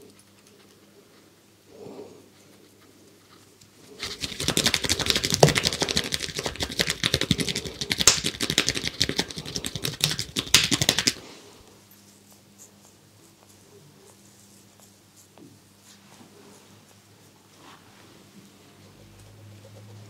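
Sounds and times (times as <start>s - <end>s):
hands rubbing skin and hair: 2.8s - 20.0s.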